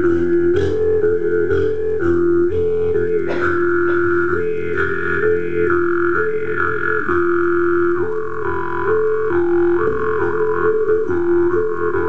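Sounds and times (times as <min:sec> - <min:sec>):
jaw harp buzzing drone: 0:00.0 - 0:12.0.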